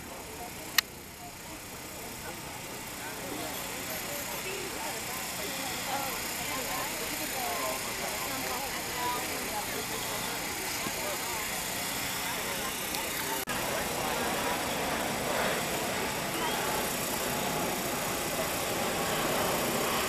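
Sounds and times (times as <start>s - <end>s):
indistinct spectator chatter: 0.0s - 20.0s
outdoor background noise: 0.0s - 20.0s.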